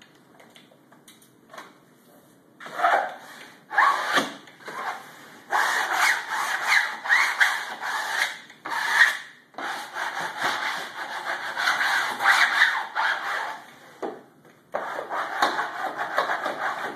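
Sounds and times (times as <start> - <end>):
wallcovering scraping strokes: 2.6 - 14.0, 14.8 - 16.9.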